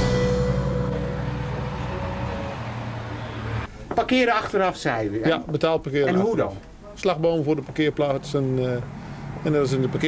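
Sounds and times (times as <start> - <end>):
acoustic guitar music: 0.0 - 3.8.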